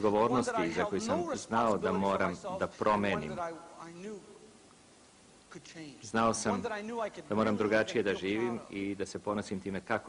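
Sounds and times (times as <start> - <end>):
man speaking: 0.0 - 4.5, 5.5 - 10.0
faint steady hiss: 0.0 - 10.0.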